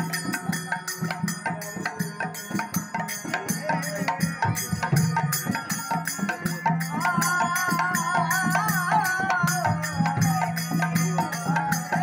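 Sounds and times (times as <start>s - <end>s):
devotional music with hand drums: 0.0s - 12.0s.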